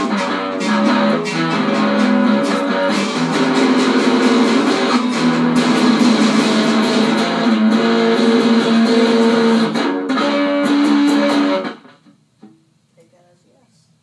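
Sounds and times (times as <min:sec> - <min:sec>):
electric guitars chords: 0:00.0 - 0:12.2.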